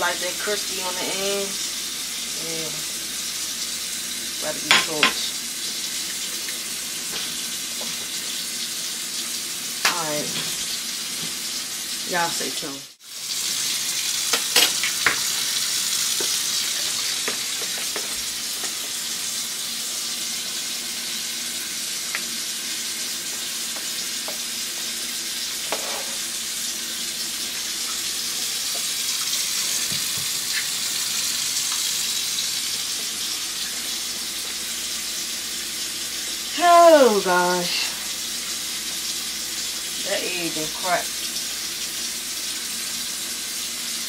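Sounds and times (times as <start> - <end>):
oil sizzling in frying pan: 0.0 - 44.0.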